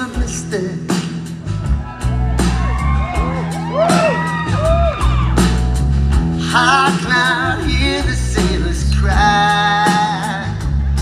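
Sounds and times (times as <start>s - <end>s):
live band with piano and guitar: 0.0s - 11.0s
audience whooping: 1.5s - 5.8s.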